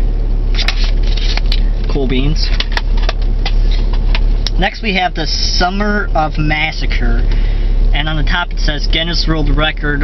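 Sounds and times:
low cabin hum: 0.0 - 10.0
paper insert rustling: 0.5 - 1.7.

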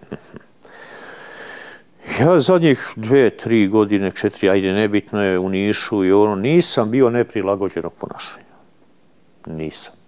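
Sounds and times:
man sniffing: 0.6 - 1.8.

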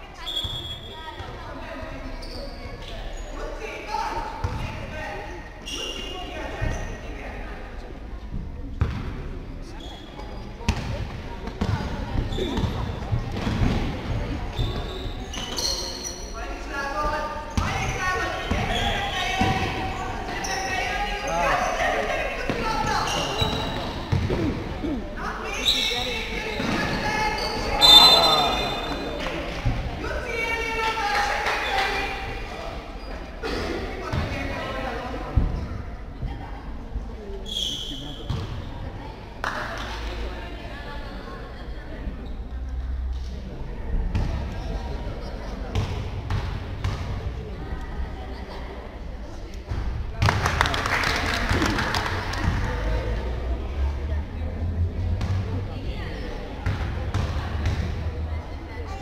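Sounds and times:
voices calling out: 17.7 - 29.6
basketball bouncing on floor: 23.5 - 24.4.

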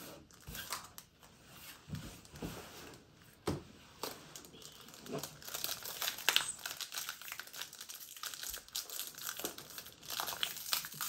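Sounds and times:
foil wrapper crinkling: 4.4 - 11.0.

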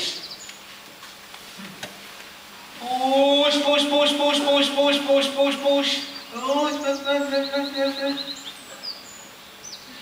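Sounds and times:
faint birdsong chirps and whistles: 0.0 - 0.7, 4.7 - 10.0.

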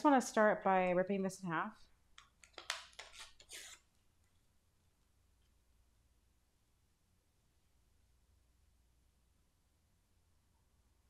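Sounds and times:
paper tearing: 2.8 - 3.9.

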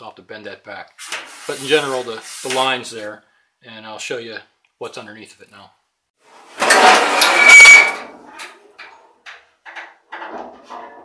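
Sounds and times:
metal fender scraping and clattering: 6.4 - 11.0
light metal knocks and rattles: 8.2 - 11.0.

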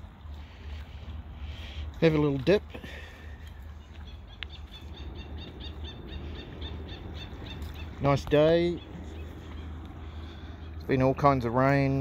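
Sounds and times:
outdoor rumble and hiss: 0.0 - 12.0
small bird chirping: 3.7 - 10.8.

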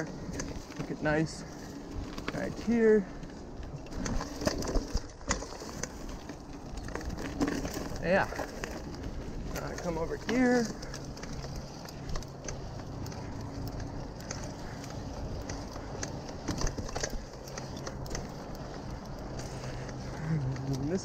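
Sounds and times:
bike clicks and rattles: 0.0 - 21.0
bike tyres on dirt trail: 0.0 - 21.0.

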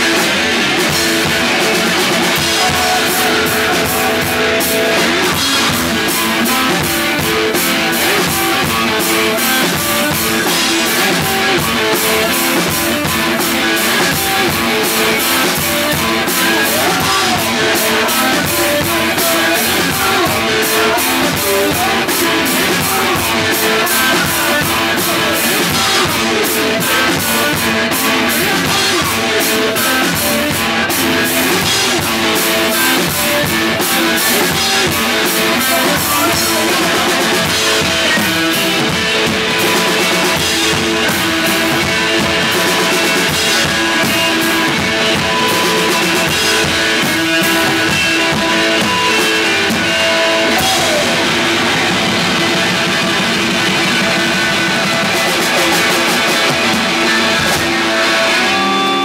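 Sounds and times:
drum kit: 0.0 - 59.0
electric guitar: 0.0 - 59.0.

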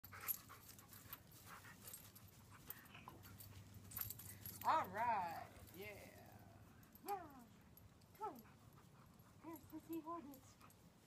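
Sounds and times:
dog panting: 0.0 - 4.7, 8.4 - 11.0.

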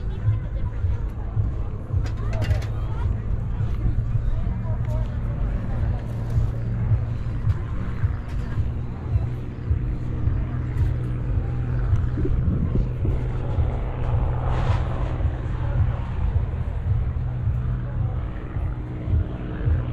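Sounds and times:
faint voices of people: 0.0 - 19.9
wind buffeting microphone: 0.0 - 19.9.

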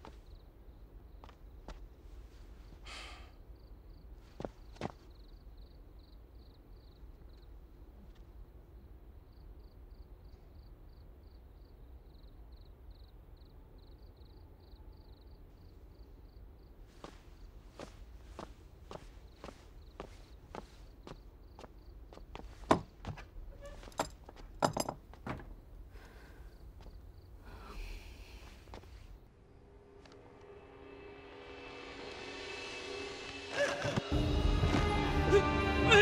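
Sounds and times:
footsteps walking: 16.9 - 25.2.

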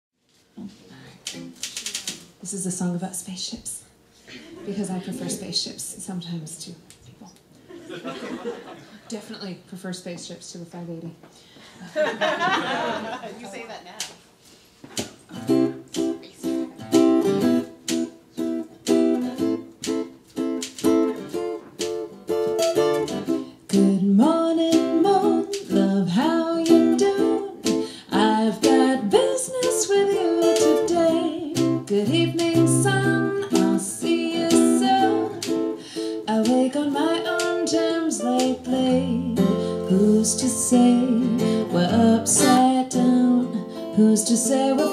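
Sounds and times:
plucked string chords: 15.3 - 44.9
woman singing: 23.7 - 44.9.

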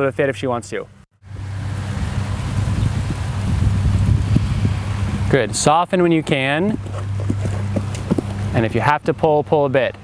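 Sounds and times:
wind rushing across microphone: 1.3 - 8.8.

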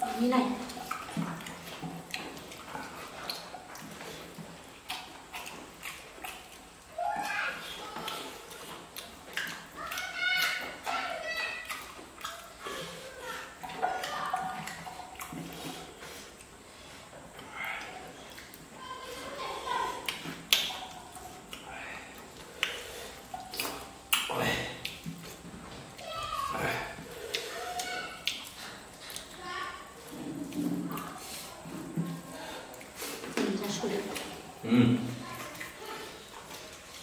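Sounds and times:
wet chewing and lip-smacking: 0.0 - 34.6, 35.2 - 37.0
quiet eating sounds: 0.0 - 37.0.

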